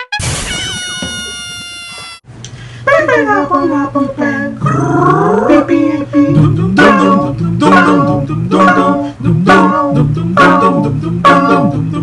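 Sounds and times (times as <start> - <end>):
a cappella voices singing: 2.9 - 12.0
low hummed bass tone: 3.1 - 12.0.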